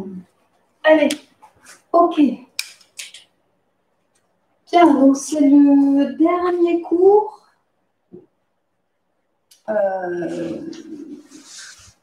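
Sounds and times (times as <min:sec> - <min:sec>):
person speaking: 0:00.0 - 0:03.4, 0:04.6 - 0:07.5, 0:09.5 - 0:12.0
rustling on foam mat: 0:10.2 - 0:12.0.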